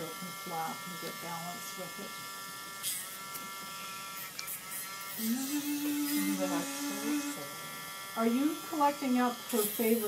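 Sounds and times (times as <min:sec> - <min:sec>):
rotary nail grinder whine: 0:00.0 - 0:10.0.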